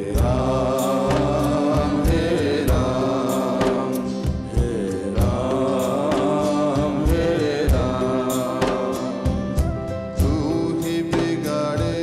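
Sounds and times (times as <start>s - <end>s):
drum strokes: 0.0s - 12.0s
instrumental accompaniment: 0.0s - 12.0s
man singing: 0.0s - 12.0s.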